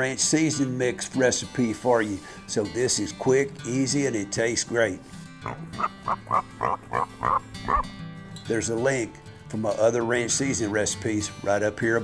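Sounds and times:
quiet background music: 0.0 - 12.0
pig grunting: 5.4 - 7.9.

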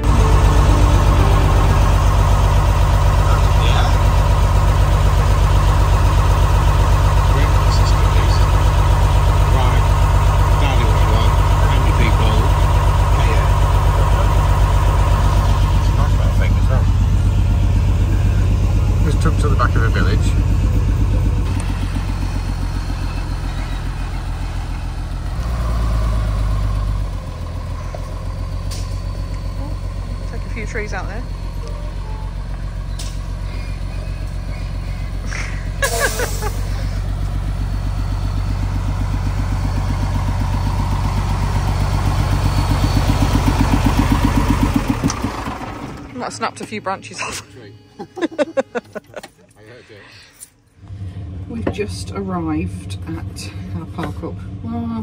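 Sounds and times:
diesel truck engine running: 0.0 - 55.0.

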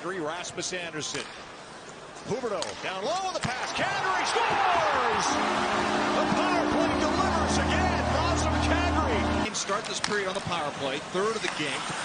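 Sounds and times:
goal horn low tone: 4.9 - 9.5.

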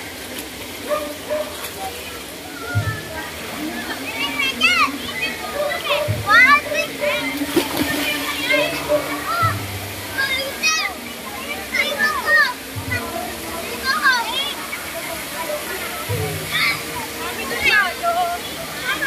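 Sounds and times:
murmur of bathers' voices: 0.0 - 19.0
small waterfall rushing: 0.0 - 19.0
water splashing: 0.0 - 19.0
children shouting: 0.9 - 19.0.

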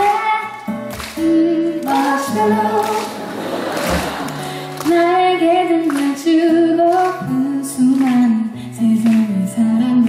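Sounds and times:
woman singing: 0.0 - 3.2, 4.6 - 10.0
strummed acoustic guitar: 0.0 - 10.0.

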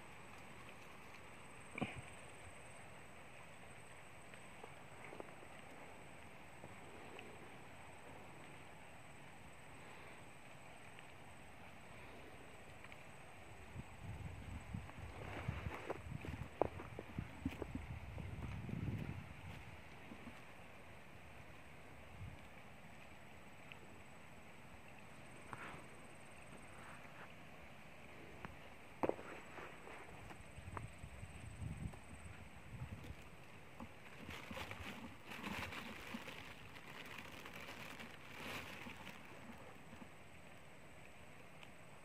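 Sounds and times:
outdoor background hiss: 0.0 - 42.0
rustling and clicks near microphone: 31.8 - 40.2.

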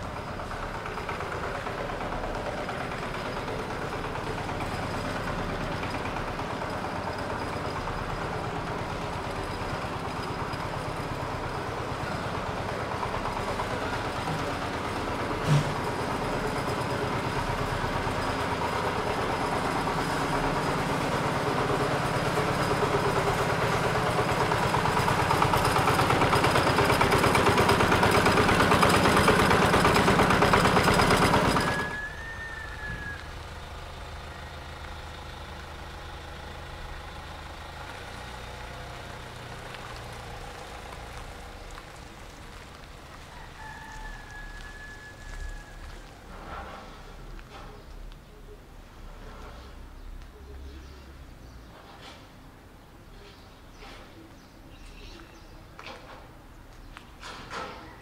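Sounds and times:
vehicle engine idling: 0.0 - 58.0.

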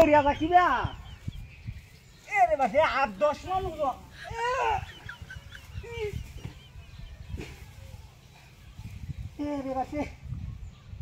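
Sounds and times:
chicken calling: 4.0 - 7.1.

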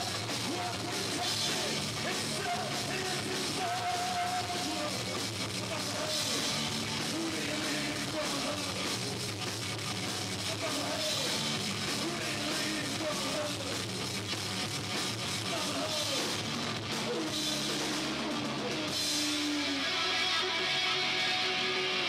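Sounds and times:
person singing: 0.0 - 8.9, 10.4 - 13.8, 17.0 - 22.0
punk rock band playing live: 0.0 - 22.0.

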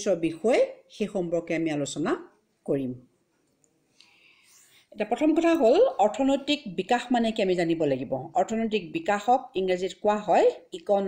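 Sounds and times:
person speaking: 0.0 - 3.2, 4.9 - 11.0
faint breath drawn in: 3.9 - 5.0.

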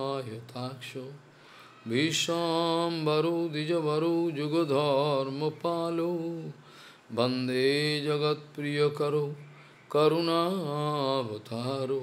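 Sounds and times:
man chanting into a microphone: 1.8 - 12.0.

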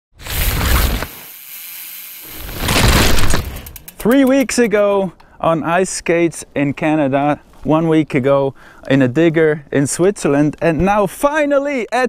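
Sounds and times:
dirt spraying: 0.2 - 4.2
mountain bike drivetrain clatter: 0.3 - 5.1.

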